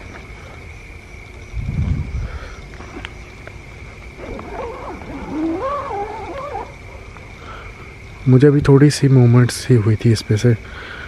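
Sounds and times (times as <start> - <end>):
wavering howl-like animal call: 4.1 - 7.4.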